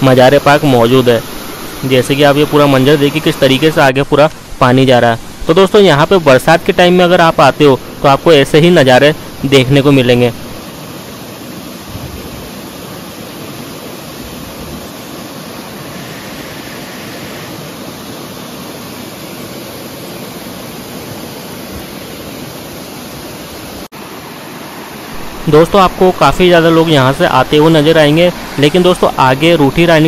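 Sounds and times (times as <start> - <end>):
water rushing and splashing into pool: 0.0 - 30.0.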